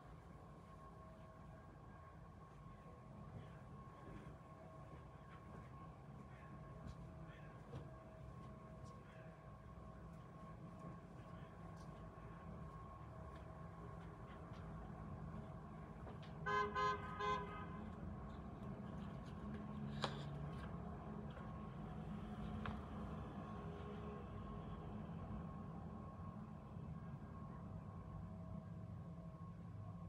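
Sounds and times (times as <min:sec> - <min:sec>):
distant street traffic rumble: 0:00.0 - 0:30.0
car horn toots: 0:16.4 - 0:17.8.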